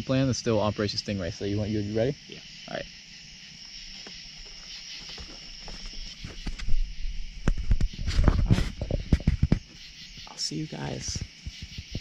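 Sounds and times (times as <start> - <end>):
crickets chirping: 0.0 - 12.0
footsteps on grass: 3.6 - 9.7.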